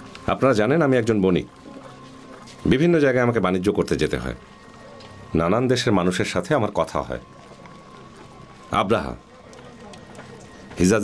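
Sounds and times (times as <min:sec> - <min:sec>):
man speaking: 0:08.7 - 0:09.2.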